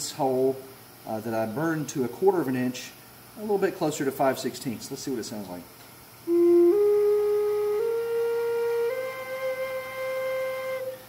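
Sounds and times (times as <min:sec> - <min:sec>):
flute playing rising notes: 0:06.3 - 0:11.0.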